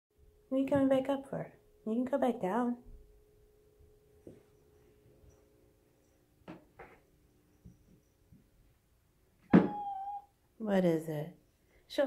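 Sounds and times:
steady high tone: 9.5s - 10.3s.

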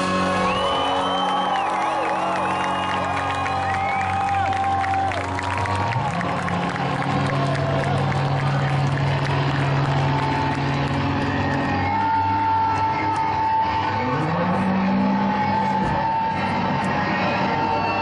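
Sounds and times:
rock band droning chord: 5.4s - 15.6s.

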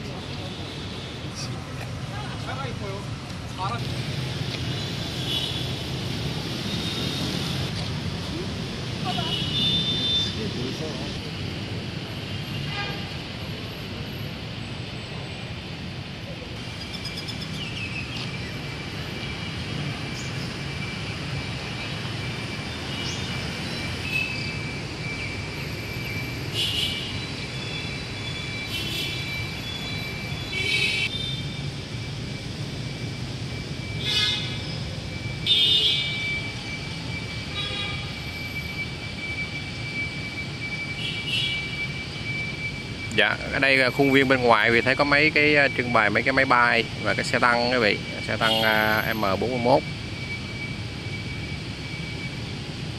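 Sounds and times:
city traffic hum: 0.0s - 52.9s
vehicle horn toots: 30.5s - 31.4s, 34.0s - 34.6s.

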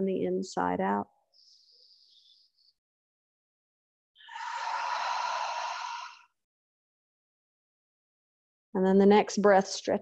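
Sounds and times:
person breathing through mouth: 4.2s - 6.4s.

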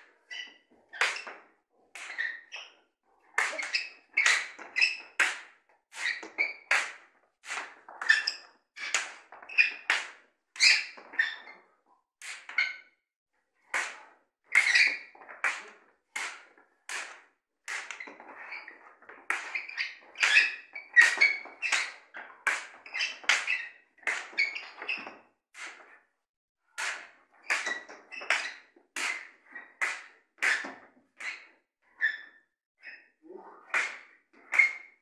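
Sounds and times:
sparring sticks clacking: 3.4s - 9.2s.

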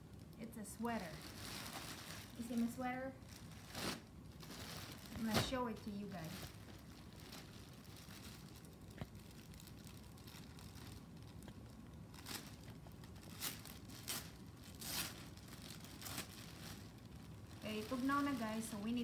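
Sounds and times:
plastic garment bag crinkling: 0.0s - 19.0s.

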